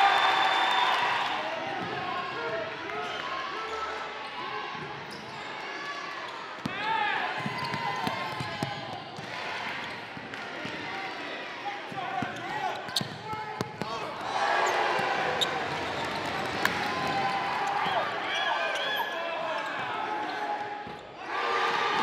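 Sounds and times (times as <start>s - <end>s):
voices of players and spectators: 0.0s - 22.0s
sneaker squeaks: 5.0s - 5.6s, 6.3s - 8.8s, 12.2s - 13.8s, 15.4s - 16.3s.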